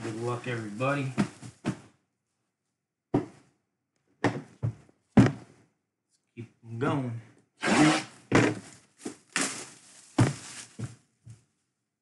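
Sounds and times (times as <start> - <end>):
boxes scuffing: 0.0 - 1.9, 7.8 - 11.5
cardboard boxes thumping on table: 1.1 - 1.9, 4.2 - 5.6, 8.3 - 9.6, 10.2 - 11.0.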